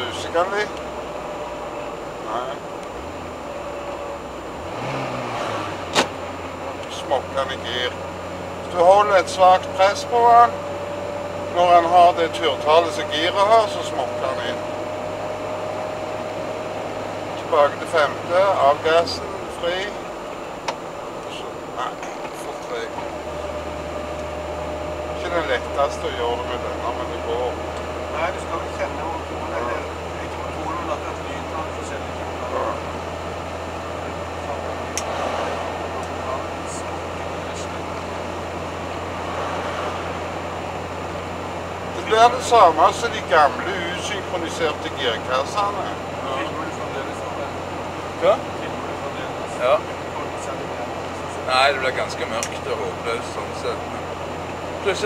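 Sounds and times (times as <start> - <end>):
constant low hum: 0.0 - 55.0
steady whine: 0.0 - 55.0
vehicle engine and road noise: 0.0 - 55.0
sharp click: 5.9 - 6.1.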